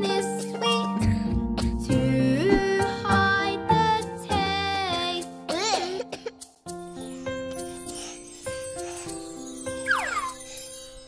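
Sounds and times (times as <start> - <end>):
children's song music: 0.0 - 11.0
cartoon baby coughing: 5.5 - 6.5.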